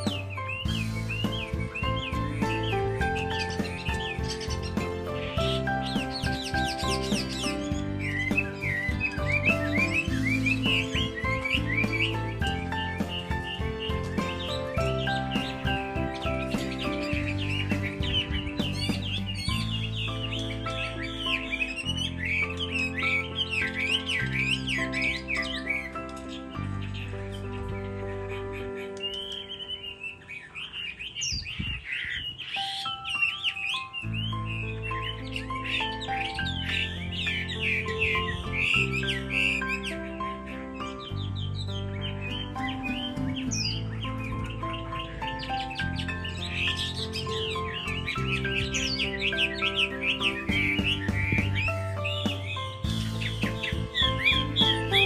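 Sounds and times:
background music of low chords: 0.0s - 31.7s, 32.4s - 55.0s
bird singing whistles and trills: 0.0s - 55.0s.

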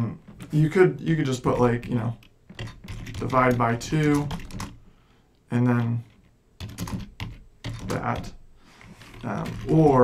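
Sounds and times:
computer keyboard typing: 1.3s - 4.8s, 5.8s - 10.0s.

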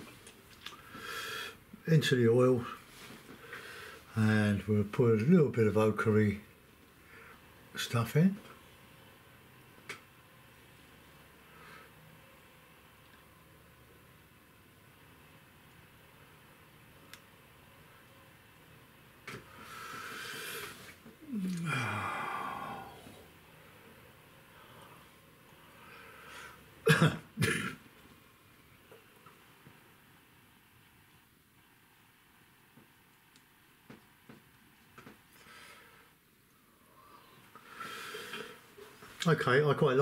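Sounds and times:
man clearing his throat: 26.8s - 27.8s
sharp coughs: 26.8s - 27.8s.

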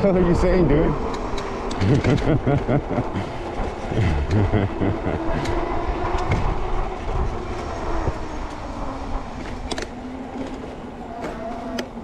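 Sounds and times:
wind noise: 0.0s - 11.2s
electric bike motor hum: 0.0s - 12.0s.

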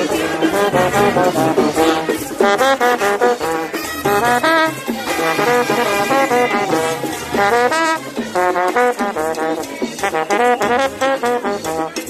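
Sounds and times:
brass band playing: 0.0s - 12.0s.

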